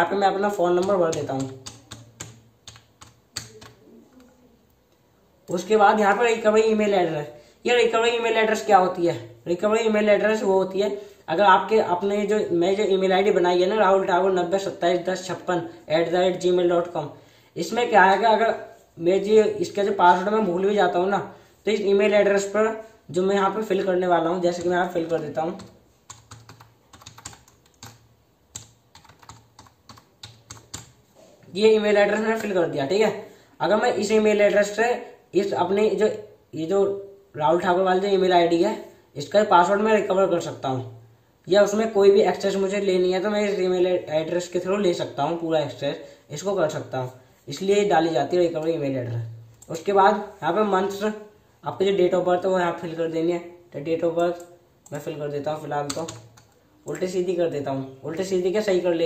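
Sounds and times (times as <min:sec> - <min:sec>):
keyboard typing clicks: 0:00.7 - 0:03.8, 0:24.5 - 0:31.0, 0:55.8 - 0:57.0.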